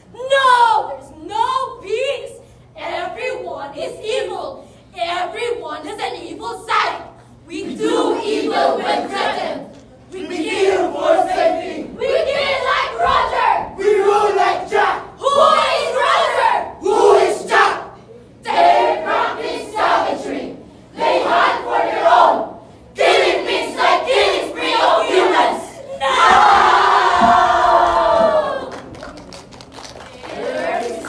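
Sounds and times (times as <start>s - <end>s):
group shouting in rhythmic bursts: 10.6s - 28.7s
group yelling and screaming: 25.4s - 28.7s.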